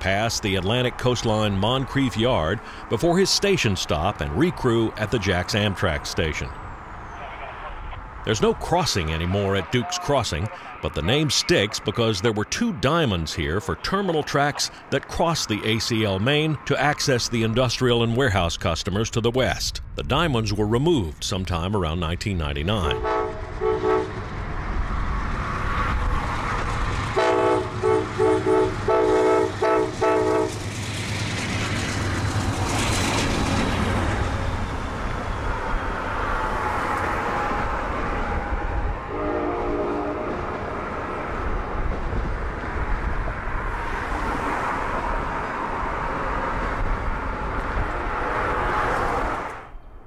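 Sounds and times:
train horn blasts: 0:22.9 - 0:24.2, 0:27.2 - 0:30.6, 0:39.1 - 0:40.5
locomotive engine rumble: 0:26.1 - 0:43.7.

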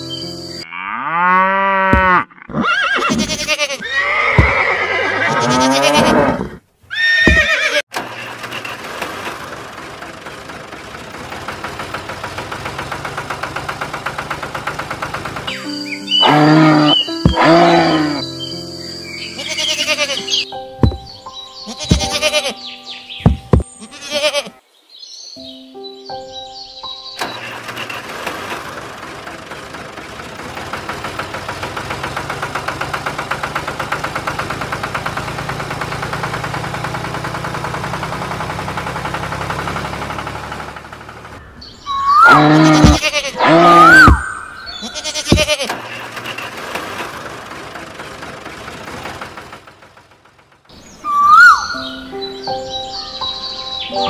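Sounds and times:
goat bleating: 0:01.8 - 0:07.8, 0:16.2 - 0:18.2, 0:19.3 - 0:20.4, 0:21.7 - 0:22.6, 0:23.5 - 0:24.6, 0:42.4 - 0:45.8
music with held notes: 0:15.5 - 0:24.3, 0:51.7 - 0:54.0.

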